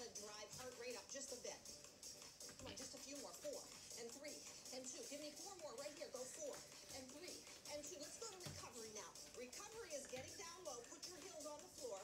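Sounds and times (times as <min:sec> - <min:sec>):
quiet background music: 0:00.0 - 0:12.0.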